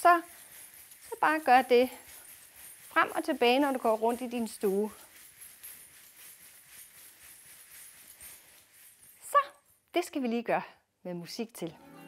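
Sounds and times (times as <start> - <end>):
metal coins jingling: 0.0 - 9.8.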